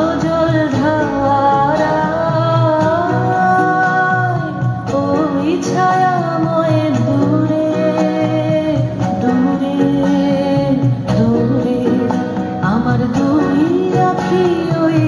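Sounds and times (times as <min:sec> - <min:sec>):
instrumental accompaniment: 0:00.0 - 0:15.0.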